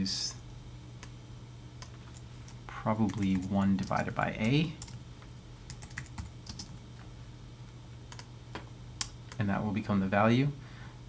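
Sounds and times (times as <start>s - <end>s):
low steady hum: 0.0s - 11.0s
typing on computer keyboard: 1.8s - 5.0s, 5.7s - 6.8s.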